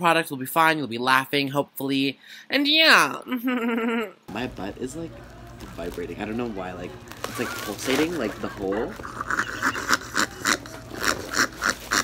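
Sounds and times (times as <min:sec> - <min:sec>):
wheezing laughter: 0:08.3 - 0:12.0.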